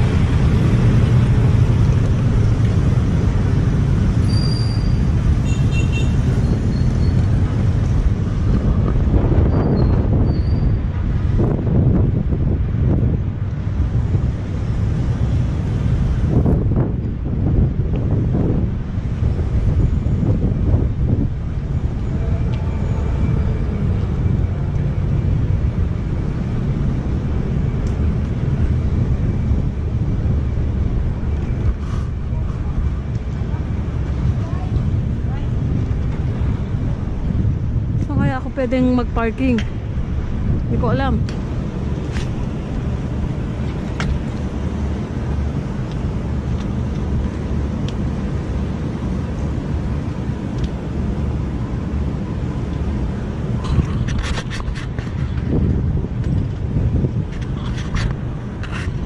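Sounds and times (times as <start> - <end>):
city street traffic: 0.0 - 59.0
wind rushing over microphone: 0.0 - 59.0.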